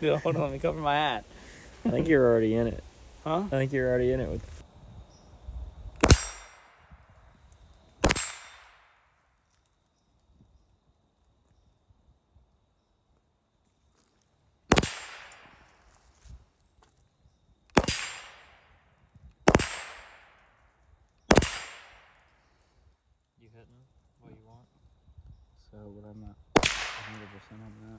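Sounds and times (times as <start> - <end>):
rifle shots echoing: 6.0 - 6.9, 8.0 - 9.0, 14.7 - 15.8, 17.7 - 18.8, 19.4 - 20.5, 21.3 - 22.3, 26.6 - 27.8.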